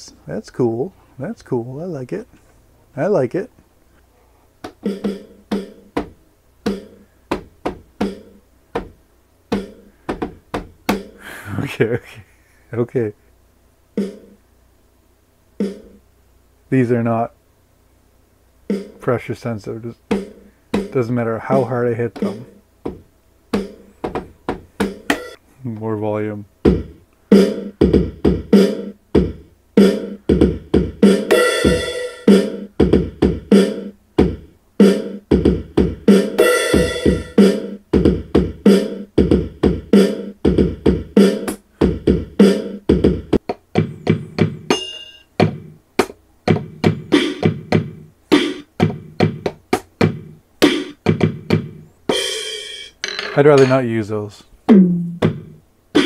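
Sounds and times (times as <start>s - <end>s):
electronic drum hits: 15.6s - 16.0s, 54.7s - 56.0s.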